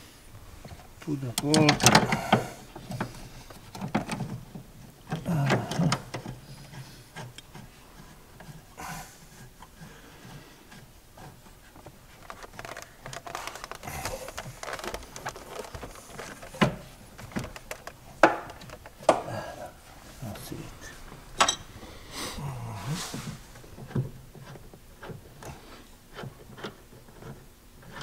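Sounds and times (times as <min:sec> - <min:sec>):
plastic clicks and knocks: 0:01.4 - 0:06.4, 0:11.2 - 0:19.3.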